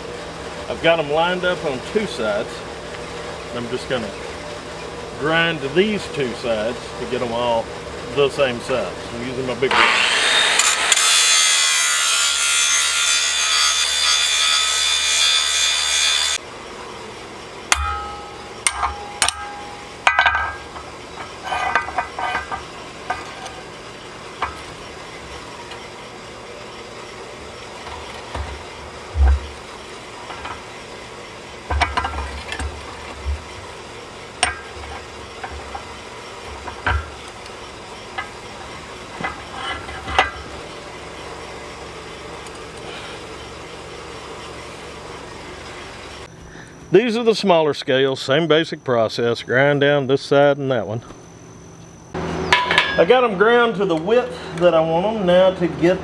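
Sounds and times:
angle grinder grinding steel: 9.3s - 16.4s, 17.7s - 41.6s
metal clinks and knocks: 17.7s - 23.7s, 34.4s - 35.9s.

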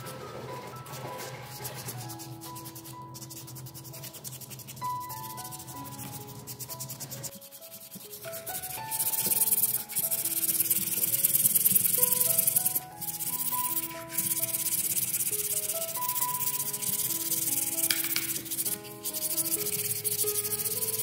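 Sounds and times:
sandpaper rasping on wood: 0.9s - 21.0s.

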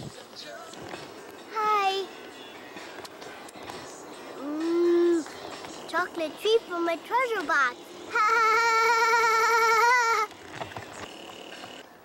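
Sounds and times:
girl singing long high note: 1.5s - 2.1s, 4.4s - 5.3s, 8.1s - 10.3s.

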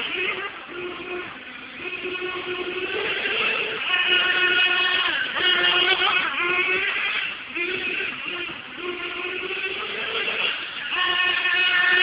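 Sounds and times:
rc car motor buzzing: 0.0s - 12.0s.

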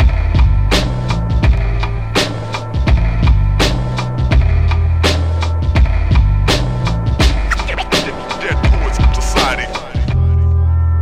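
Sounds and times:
hip hop drum beat: 0.0s - 10.3s
deep bass line: 0.0s - 11.0s
turntable scratches: 7.3s - 10.1s
looped sampled melody: 7.3s - 10.3s.

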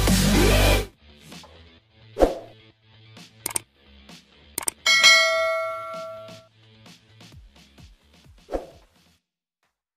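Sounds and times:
quick clicks: 4.6s - 4.8s
notification bell chime: 4.9s - 6.4s.

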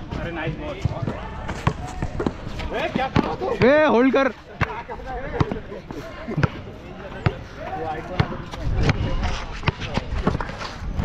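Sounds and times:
players' voices: 0.0s - 11.0s.

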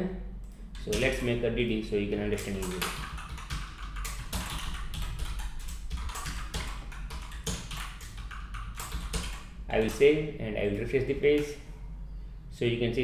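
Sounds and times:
keyboard typing: 0.4s - 1.4s, 2.2s - 10.2s.

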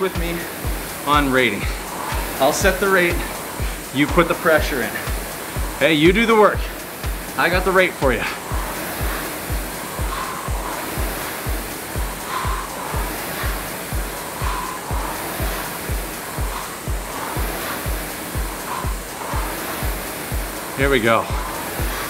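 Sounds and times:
background music with beat: 0.0s - 22.0s
rowing machine flywheel whoosh: 0.0s - 22.0s.

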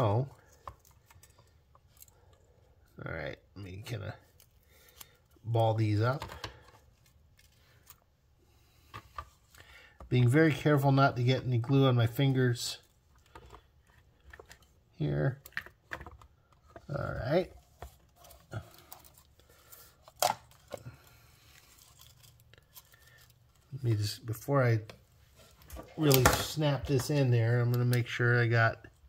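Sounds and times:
hands handling plastic parts: 0.0s - 29.0s.

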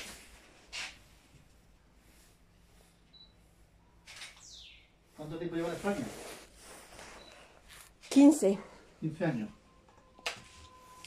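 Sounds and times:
bird chirp: 4.2s - 5.1s.

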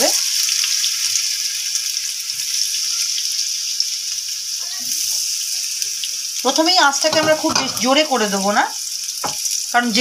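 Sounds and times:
vegetables sizzling in hot oil: 0.0s - 10.0s.

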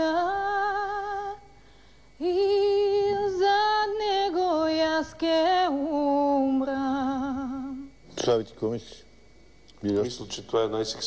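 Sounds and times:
woman singing unaccompanied: 0.0s - 1.5s, 2.2s - 7.9s.

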